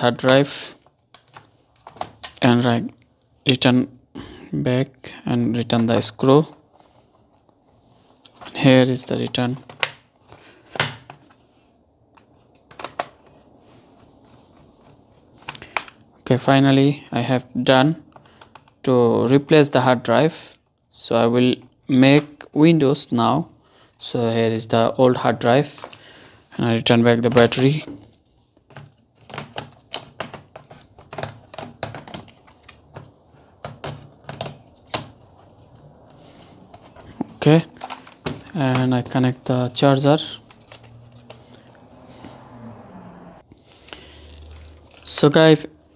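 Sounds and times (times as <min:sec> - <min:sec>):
plastic clicks and knocks: 0:28.7 - 0:35.2.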